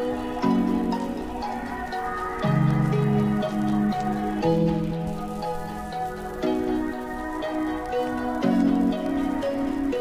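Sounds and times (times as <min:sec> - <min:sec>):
crackling noise: 0:00.0 - 0:10.0.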